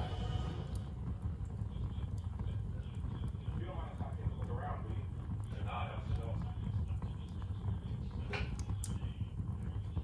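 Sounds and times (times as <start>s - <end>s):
faint voices: 0.0s - 10.0s
log fire crackling: 0.0s - 10.0s.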